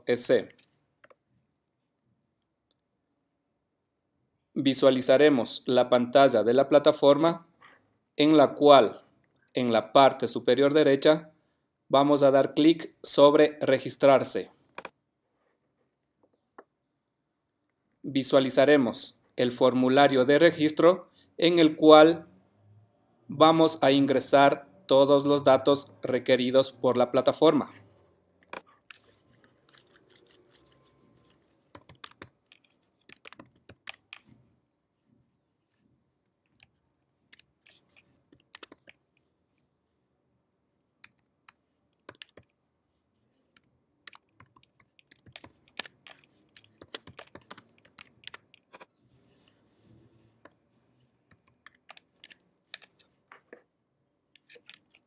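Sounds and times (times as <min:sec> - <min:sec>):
typing on computer keyboard: 0:29.7 - 0:34.3, 0:37.3 - 0:39.0, 0:41.0 - 0:42.6, 0:43.5 - 0:48.8, 0:51.3 - 0:53.0.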